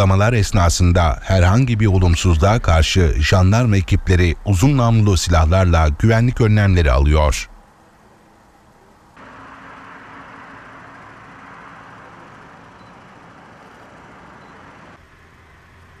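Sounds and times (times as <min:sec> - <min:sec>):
road traffic noise: 0:07.5 - 0:16.0.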